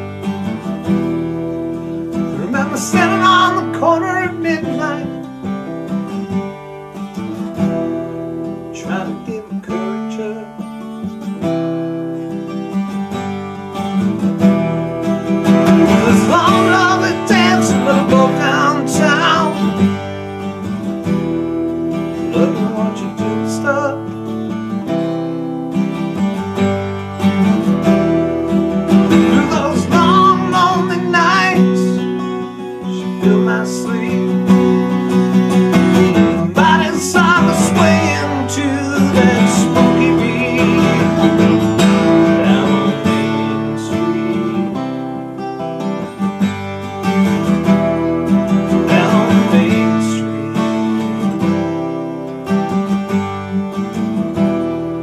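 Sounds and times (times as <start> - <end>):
acoustic guitar strumming: 0.0 - 55.0
man singing: 2.1 - 5.6, 8.6 - 11.2, 15.5 - 20.2, 22.0 - 24.5, 28.9 - 45.2, 47.4 - 51.7.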